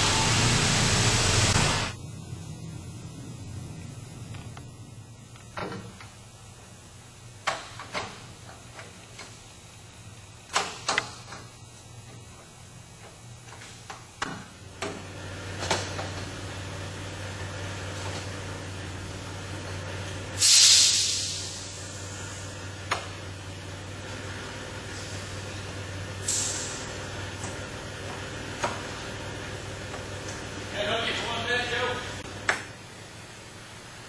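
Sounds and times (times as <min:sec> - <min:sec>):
machinery hum: 0:00.0 - 0:34.0
hissing air burst: 0:20.3 - 0:22.7, 0:26.2 - 0:27.1.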